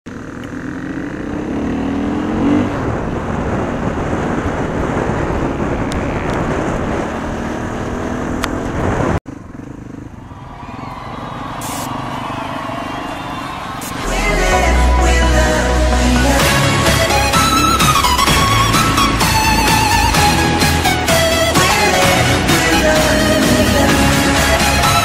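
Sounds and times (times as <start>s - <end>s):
dirt bike engine revving: 0.1s - 25.0s
wind noise on microphone: 2.0s - 9.2s.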